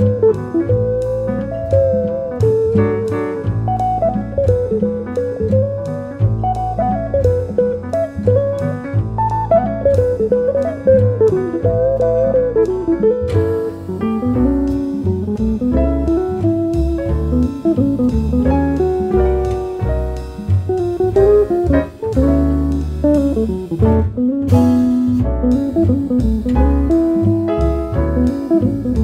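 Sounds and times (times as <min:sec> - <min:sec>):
bass: 0:00.0 - 0:29.0
drum kit: 0:00.0 - 0:29.0
electric jazz guitar: 0:00.0 - 0:29.0.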